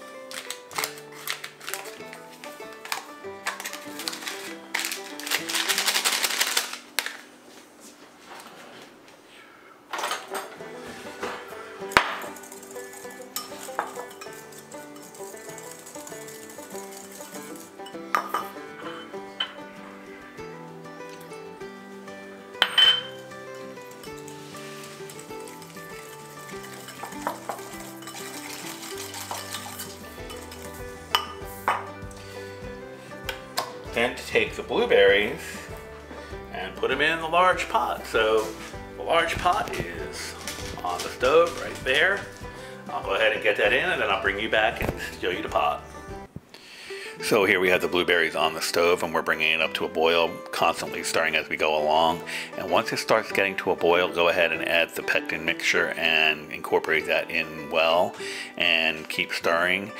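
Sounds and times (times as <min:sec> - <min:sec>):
background music: 0:00.0 - 0:07.8, 0:10.0 - 0:59.9
paper packet rustling: 0:00.0 - 0:08.8, 0:12.2 - 0:17.9, 0:23.6 - 0:31.0, 0:37.7 - 0:45.8
whisk clinking in ceramic bowl: 0:12.4 - 0:17.6, 0:24.9 - 0:31.8.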